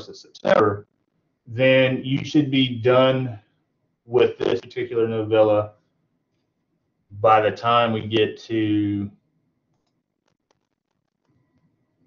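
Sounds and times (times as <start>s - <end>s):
low room hiss: 0.0s - 10.2s.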